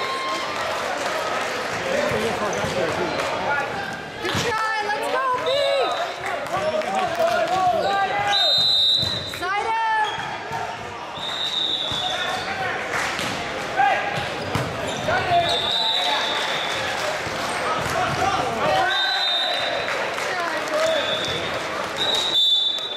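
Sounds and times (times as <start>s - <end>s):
sneakers squeaking on court: 14.1s - 15.7s.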